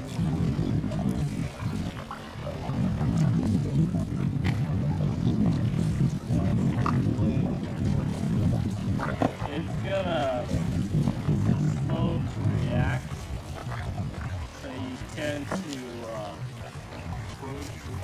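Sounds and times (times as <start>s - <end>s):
wind buffeting microphone: 0.0s - 18.0s
faint voices: 14.3s - 18.0s.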